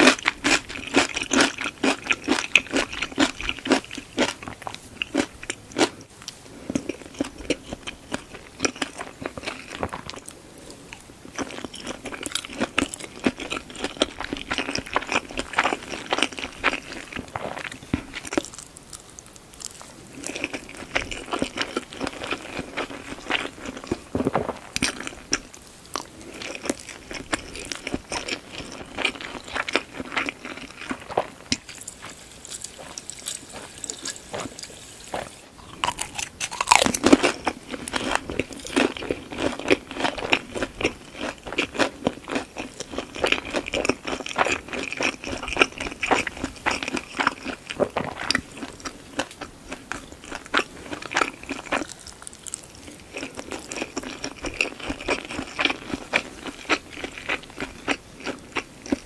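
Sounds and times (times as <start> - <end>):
crunchy chewing: 0.0 - 59.0.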